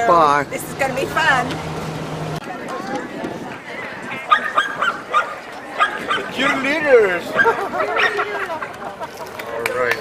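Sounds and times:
dog barking: 0:04.3 - 0:06.7.

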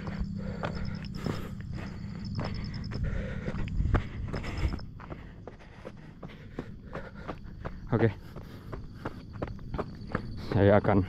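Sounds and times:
footsteps on gravel track: 0:00.0 - 0:11.0.

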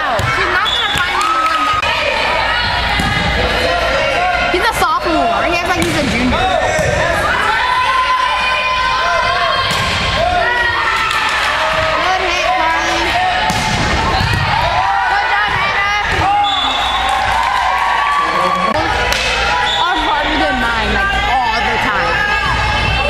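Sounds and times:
volleyball smacks: 0:05.7 - 0:07.1, 0:13.4 - 0:14.7.

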